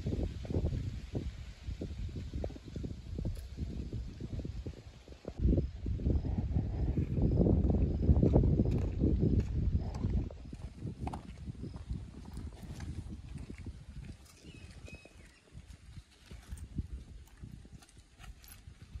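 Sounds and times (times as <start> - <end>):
wind rumble on microphone: 0.0 - 19.0.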